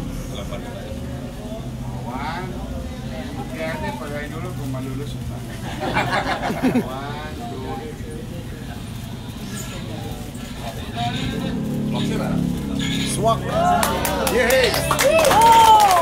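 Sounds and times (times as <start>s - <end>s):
steady low hum: 0.0s - 15.2s
crowd chatter: 0.0s - 16.0s.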